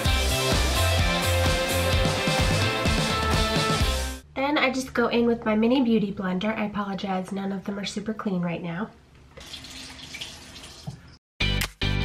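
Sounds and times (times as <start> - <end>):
background music: 0.0 - 4.3, 11.4 - 12.0
water running from a tap: 9.4 - 11.2.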